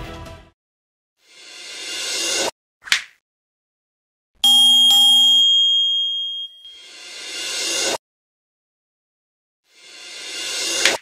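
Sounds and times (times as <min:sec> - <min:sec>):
bell chime ding: 0:04.4 - 0:06.9
high ringing bell tone: 0:04.4 - 0:07.0.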